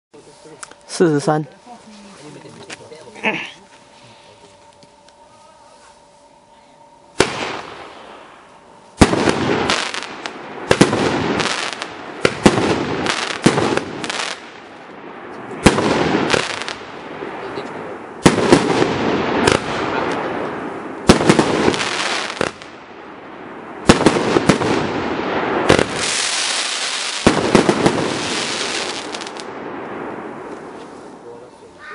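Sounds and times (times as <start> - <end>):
fireworks hissing: 7.2 - 22.8, 23.8 - 31.5
fireworks shots: 7.2 - 31.4.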